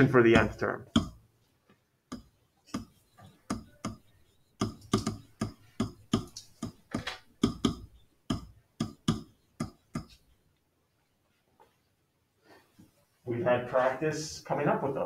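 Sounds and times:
stylus tapping and scratching: 0.0s - 10.7s.

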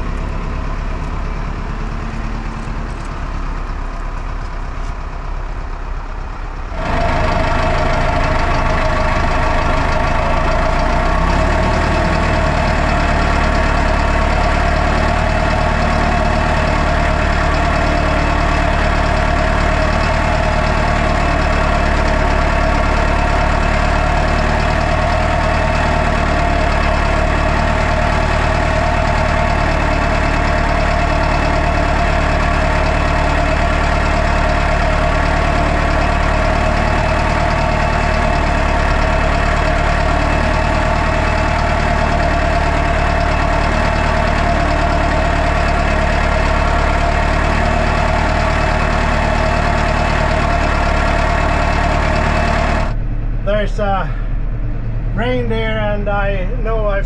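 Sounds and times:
steady whine: 0.0s - 57.0s
tractor diesel engine running: 0.0s - 57.0s.

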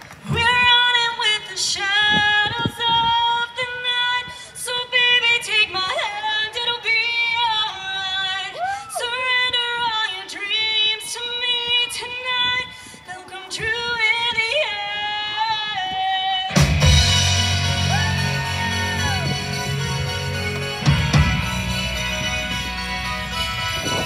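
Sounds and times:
rock band playing lightly: 16.5s - 24.0s.

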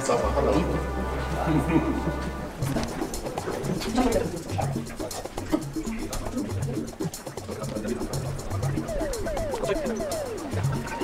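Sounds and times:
indistinct low voices: 0.0s - 11.0s.

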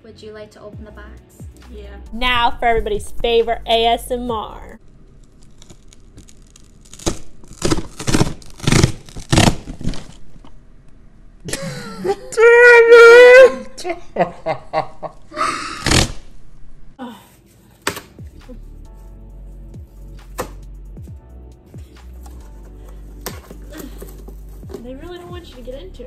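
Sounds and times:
soft background music: 0.0s - 4.8s, 17.3s - 26.0s
woman laughing loudly: 11.5s - 12.6s, 13.2s - 15.5s.

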